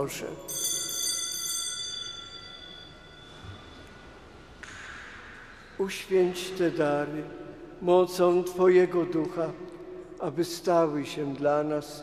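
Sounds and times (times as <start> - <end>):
small bell ringing: 0.0 - 3.8.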